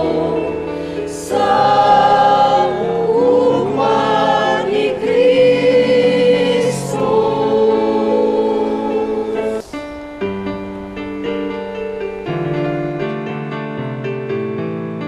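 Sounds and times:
choir singing a slow hymn: 0:00.0 - 0:11.5.

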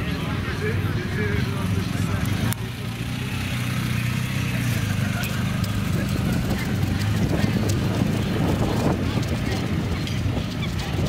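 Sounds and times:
motorcycle engine passing: 0:00.0 - 0:11.0.

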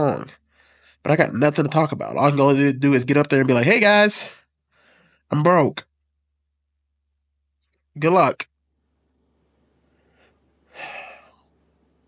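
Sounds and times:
man breathing close to microphone: 0:00.4 - 0:01.0, 0:04.7 - 0:05.3, 0:09.8 - 0:11.6.

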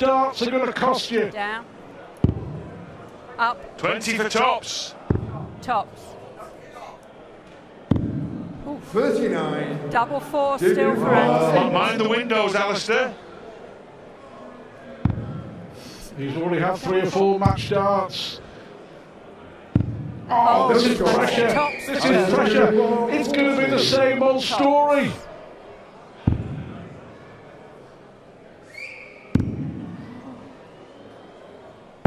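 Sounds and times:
echo in large hall: 0:00.0 - 0:32.0.

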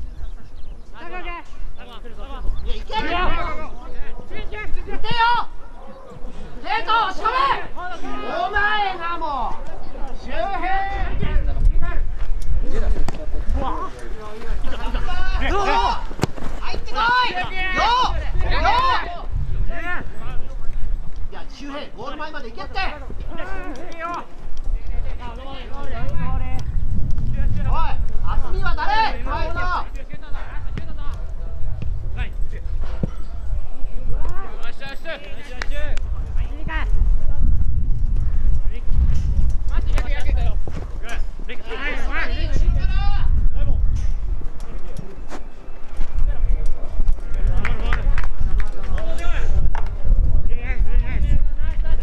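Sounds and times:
wind rumble on microphone: 0:00.0 - 0:06.6, 0:09.7 - 0:52.0
players shouting: 0:01.0 - 0:11.2, 0:12.6 - 0:20.2, 0:21.4 - 0:26.4, 0:27.7 - 0:31.4
young players shouting: 0:04.4 - 0:05.8, 0:06.6 - 0:09.5, 0:15.0 - 0:19.3, 0:27.8 - 0:29.9.

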